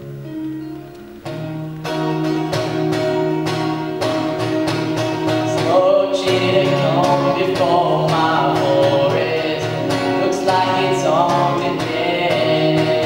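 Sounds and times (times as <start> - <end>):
acoustic guitar strumming: 0.0 - 13.0
young man singing: 5.4 - 13.0.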